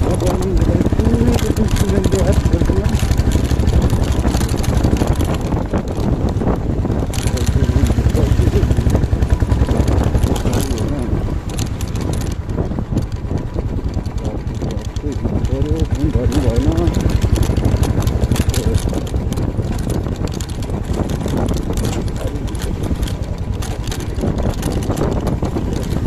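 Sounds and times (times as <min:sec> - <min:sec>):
motorcycle engine running: 0:00.0 - 0:26.0.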